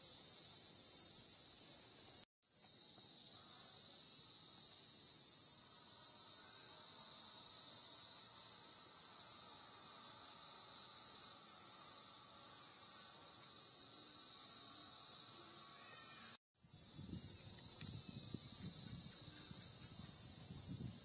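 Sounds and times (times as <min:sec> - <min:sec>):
insect chorus buzzing: 0:00.0 - 0:21.0.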